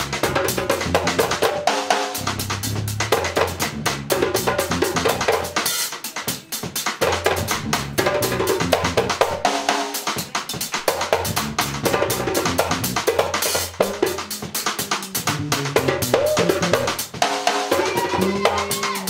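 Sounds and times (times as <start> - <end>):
bass line: 0.0 - 1.5, 2.2 - 5.5, 7.1 - 9.4, 11.0 - 17.0
drum kit with cymbals: 0.0 - 19.0
hand drum: 0.1 - 9.5, 10.5 - 19.0.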